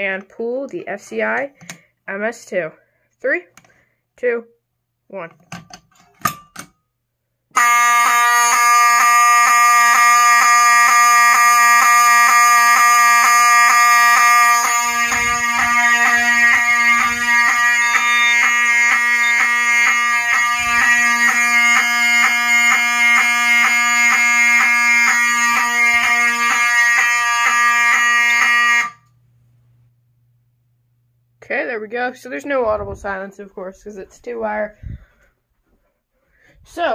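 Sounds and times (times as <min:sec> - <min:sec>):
fire alarm horn sounding: 0:07.5 - 0:29.2.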